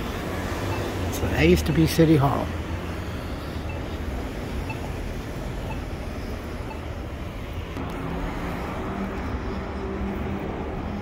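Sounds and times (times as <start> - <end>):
engine hum: 0.0 - 11.0
traffic rumble: 0.0 - 11.0.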